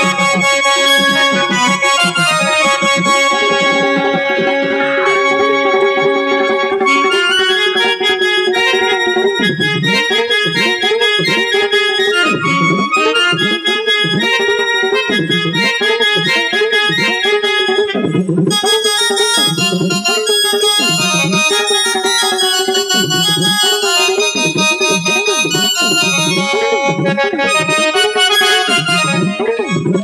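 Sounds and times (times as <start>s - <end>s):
electronic keyboard melody: 0.0s - 30.0s.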